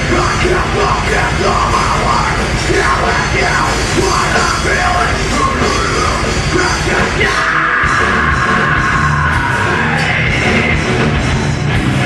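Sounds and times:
metal band playing live: 0.0 - 12.0
yelled vocals: 0.0 - 12.0.

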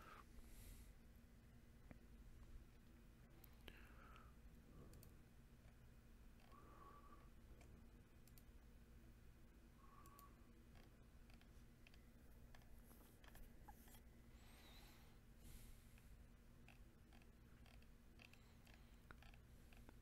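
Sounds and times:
faint low hum: 0.0 - 20.0
faint clicks: 4.9 - 5.8, 7.6 - 8.5, 10.0 - 14.0.

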